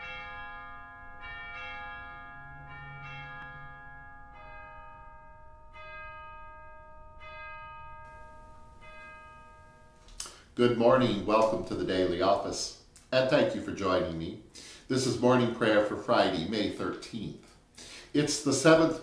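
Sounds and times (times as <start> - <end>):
church bells ringing: 0.0 - 14.3, 18.2 - 19.0.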